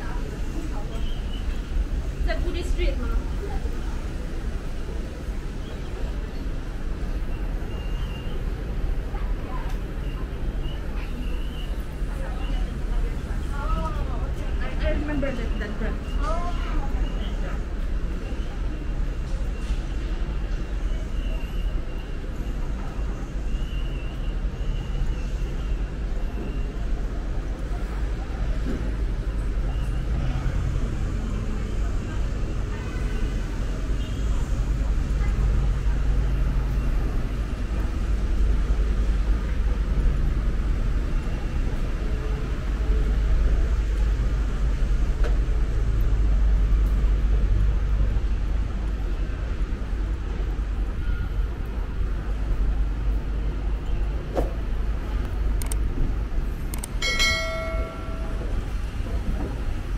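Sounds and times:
city traffic rumble: 0.0 - 59.9
faint voices of passers-by: 0.0 - 59.9
bell-like chime: 57.0 - 58.6.

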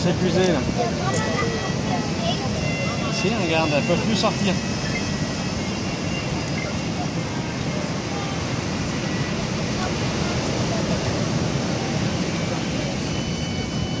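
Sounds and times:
rushing beach noise: 0.0 - 14.0.

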